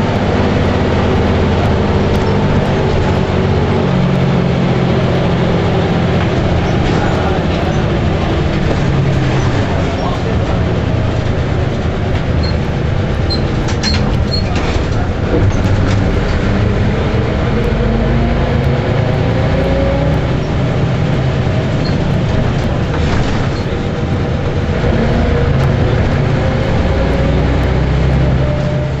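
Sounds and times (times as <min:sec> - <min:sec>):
bus engine running: 0:00.0 - 0:29.0
road and cabin noise: 0:00.0 - 0:29.0.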